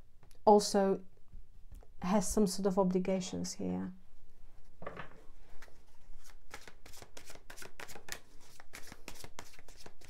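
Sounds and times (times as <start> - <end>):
cards being shuffled: 5.6 - 10.0.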